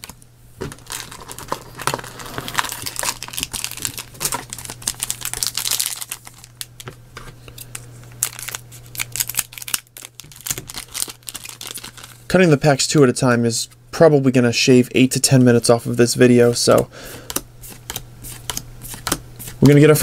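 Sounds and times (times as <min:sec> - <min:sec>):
foil wrappers crinkling: 0:00.0 - 0:07.0, 0:07.6 - 0:12.4
low steady hum: 0:00.0 - 0:20.0.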